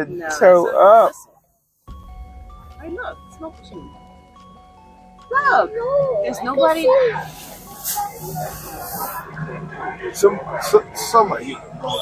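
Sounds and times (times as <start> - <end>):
smoke machine hissing: 6.7 - 9.4.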